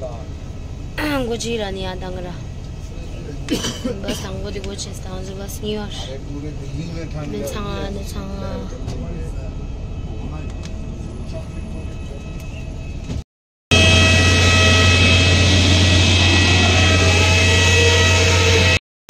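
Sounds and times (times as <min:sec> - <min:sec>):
bus rumble: 0:00.0 - 0:13.2
aircraft humming and whining: 0:00.0 - 0:18.8.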